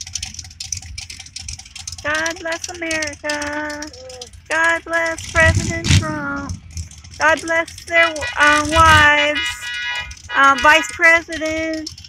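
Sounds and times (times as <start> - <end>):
low rumble: 0.0 - 9.2
rapid even ticking: 0.0 - 12.0.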